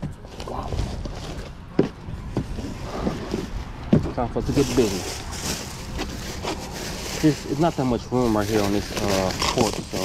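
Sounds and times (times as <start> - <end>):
bags knocking on wooden porch: 0.0 - 4.2.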